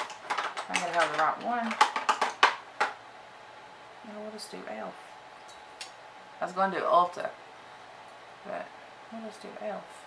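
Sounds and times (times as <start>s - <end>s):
makeup products clicking and clacking: 0.0s - 3.0s.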